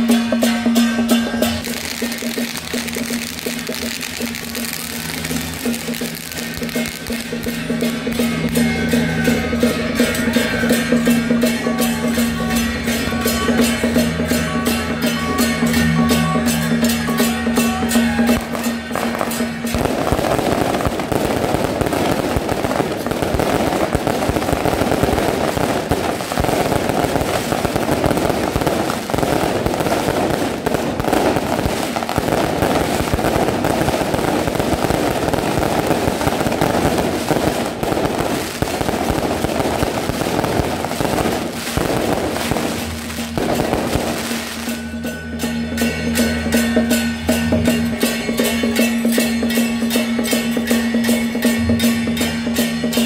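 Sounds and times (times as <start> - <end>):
firecrackers crackling: 0.0 - 53.0
music: 0.0 - 53.0.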